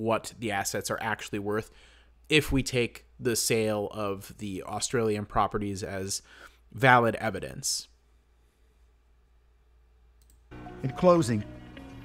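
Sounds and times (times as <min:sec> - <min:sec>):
computer mouse clicks: 0:10.2 - 0:10.5
background music: 0:10.5 - 0:12.0
man's voice: 0:10.8 - 0:11.6.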